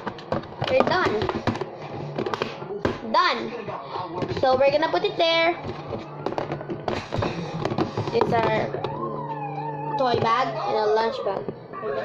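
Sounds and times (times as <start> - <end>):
plastic lunch boxes knocking: 0.0 - 3.1, 5.6 - 9.0.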